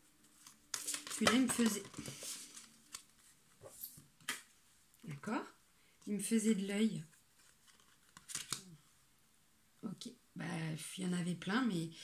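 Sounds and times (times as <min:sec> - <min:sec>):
cards rustling: 0:00.2 - 0:04.0, 0:07.1 - 0:08.7.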